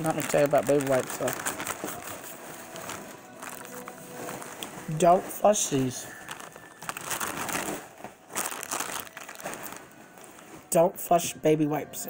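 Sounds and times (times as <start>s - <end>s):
plastic pack crinkling: 0.0s - 10.8s.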